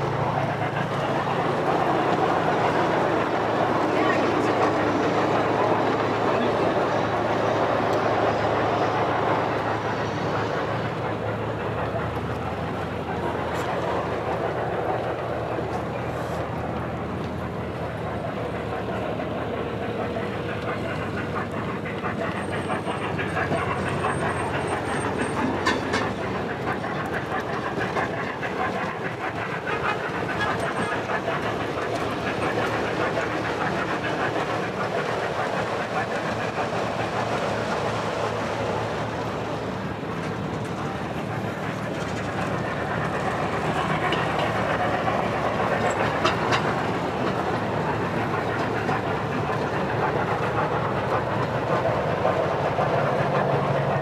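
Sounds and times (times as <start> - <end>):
people's voices: 0.0 - 54.0
model train wheels clattering on rails: 0.2 - 54.0.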